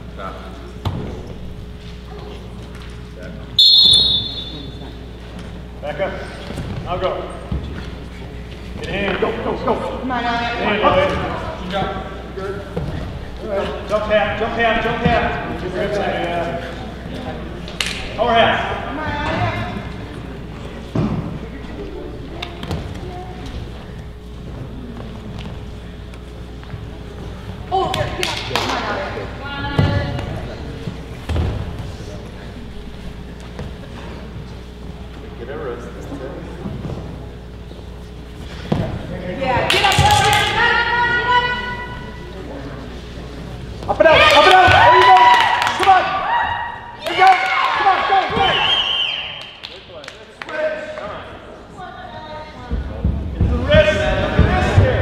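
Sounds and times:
room hum: 0:00.0 - 0:55.0
people shouting: 0:44.0 - 0:49.4.

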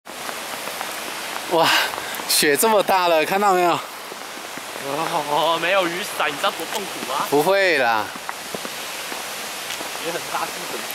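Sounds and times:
snow pattering hiss: 0:00.1 - 0:10.9.

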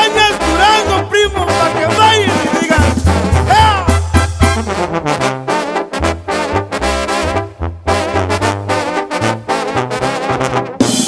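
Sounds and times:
brass band music: 0:00.0 - 0:11.0.

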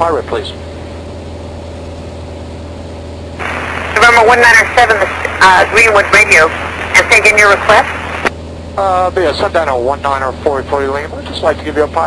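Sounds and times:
propeller plane engine drone: 0:00.0 - 0:12.0
radio hiss: 0:03.4 - 0:08.3.

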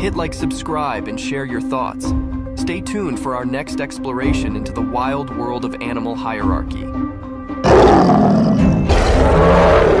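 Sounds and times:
big cats roaring: 0:07.6 - 0:10.0.

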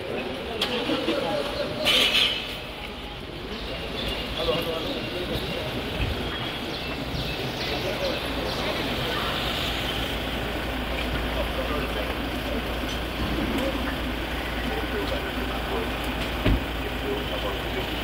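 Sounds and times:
murmur of crowd voices: 0:00.0 - 0:18.0
car engine idling: 0:03.3 - 0:18.0.

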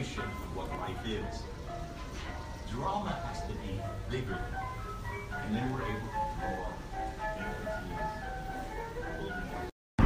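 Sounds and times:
light melody of high notes: 0:00.0 - 0:09.7.

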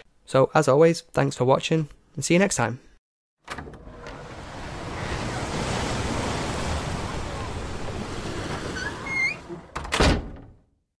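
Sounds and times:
door shutting: 0:03.4 - 0:05.7, 0:07.0 - 0:10.6
ocean surf washing: 0:03.8 - 0:09.7.

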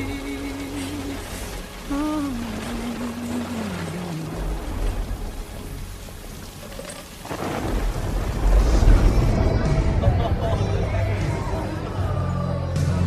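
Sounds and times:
rain falling: 0:00.0 - 0:12.2
rolling rumble of thunder: 0:07.2 - 0:11.5.

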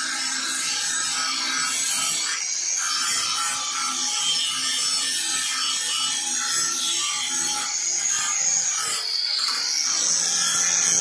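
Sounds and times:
angle grinder grinding metal: 0:00.0 - 0:11.0.

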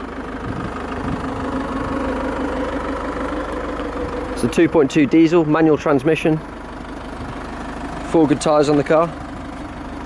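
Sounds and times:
diesel engine idling: 0:00.0 - 0:10.0.

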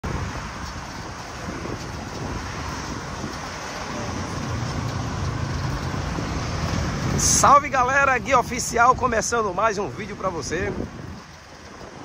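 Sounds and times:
passing cars: 0:00.0 - 0:12.0
vehicle engine low hum: 0:00.0 - 0:12.0.

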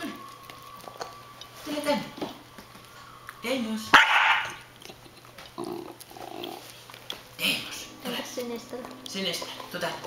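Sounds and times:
puppy growling low: 0:04.4 - 0:07.0.

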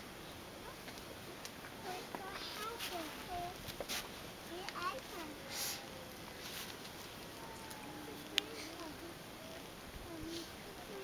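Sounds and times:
faint whining tones: 0:00.0 - 0:11.0.

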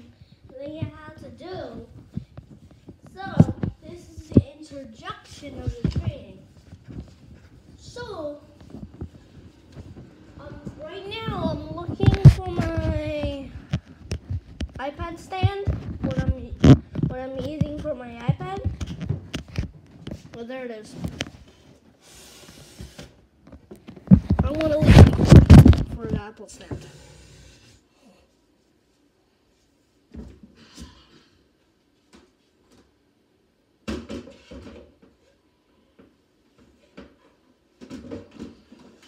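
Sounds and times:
soft rustling hiss: 0:00.0 - 0:33.4
knocking and shuffling of objects: 0:00.2 - 0:22.0, 0:22.6 - 0:27.1, 0:33.8 - 0:39.0.

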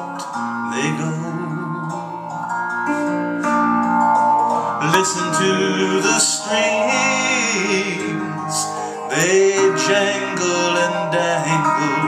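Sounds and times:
person singing: 0:00.0 - 0:03.3, 0:04.5 - 0:12.0
electric guitar picked notes: 0:00.0 - 0:12.0.

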